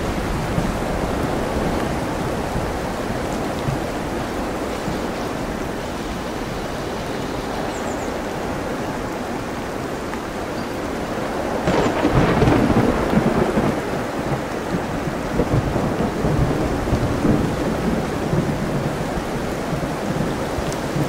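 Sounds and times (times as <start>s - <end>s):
ocean surf: 0.0s - 21.0s
steady rain: 0.0s - 21.0s.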